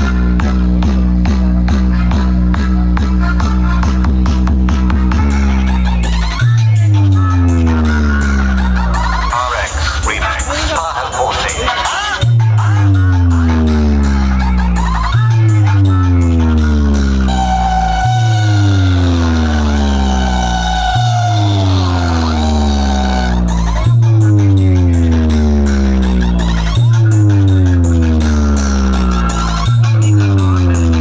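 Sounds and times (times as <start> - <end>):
heavy bass note with falling sweep: 0.0 - 9.2, 12.2 - 31.0
electronic dance music: 0.0 - 31.0.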